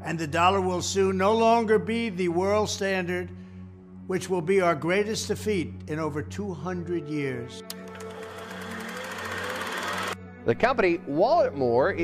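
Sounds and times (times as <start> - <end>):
low music drone: 0.0 - 10.5.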